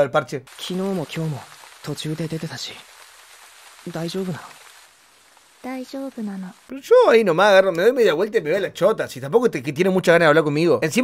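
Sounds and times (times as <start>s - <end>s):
person speaking: 0.0s - 2.9s, 3.8s - 4.6s
steady rain hiss: 0.0s - 9.1s.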